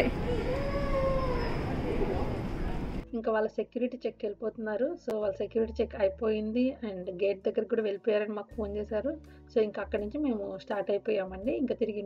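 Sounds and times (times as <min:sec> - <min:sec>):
child's voice holding a long note: 0:00.0 - 0:01.7
steady low background hum: 0:00.0 - 0:03.1.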